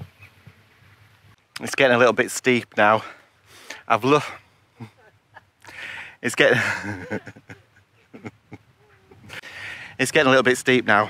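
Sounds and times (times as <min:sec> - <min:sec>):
man chuckling: 0:04.8 - 0:05.5, 0:06.5 - 0:09.4.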